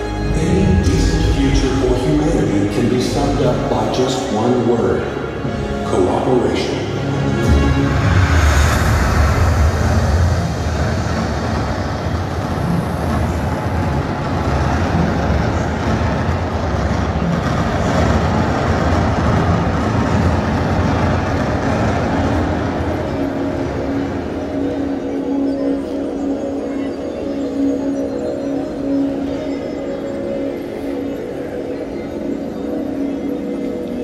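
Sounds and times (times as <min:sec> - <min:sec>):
steady humming tone: 0:00.0 - 0:34.0
loud low rumble: 0:05.1 - 0:25.0.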